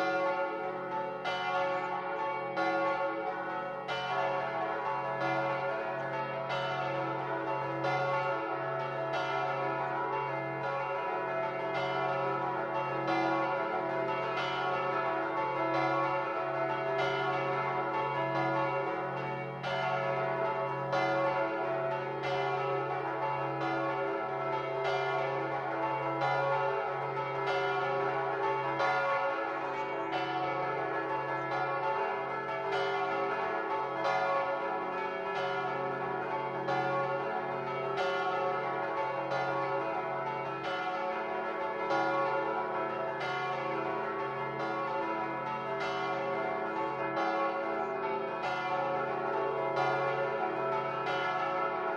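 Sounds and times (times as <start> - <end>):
church bells ringing: 0.0 - 51.9.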